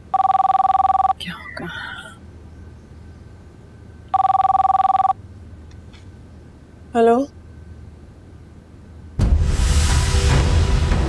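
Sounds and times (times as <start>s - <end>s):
telephone ringing: 0.0s - 1.2s, 4.1s - 5.2s.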